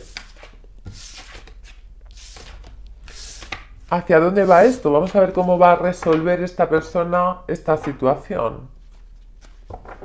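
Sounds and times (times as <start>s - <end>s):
cards being shuffled: 0.0s - 3.8s, 8.8s - 10.0s.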